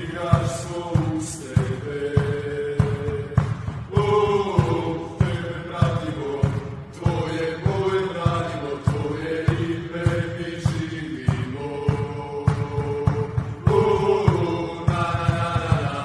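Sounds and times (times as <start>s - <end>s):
chant-like vocals over a beat: 0.0s - 16.0s.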